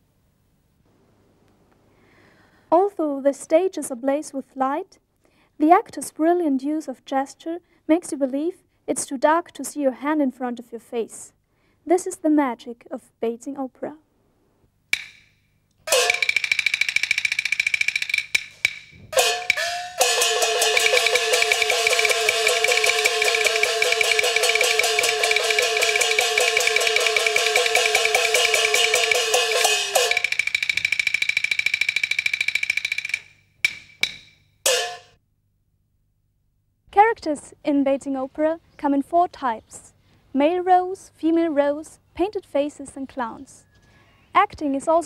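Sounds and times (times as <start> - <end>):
opera percussion drum and clappers: 15.9 - 34.2
ringing gong tones: 19.2 - 30.5.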